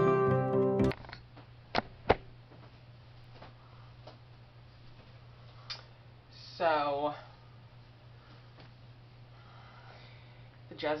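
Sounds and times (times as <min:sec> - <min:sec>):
steady low hum: 0:00.9 - 0:11.0.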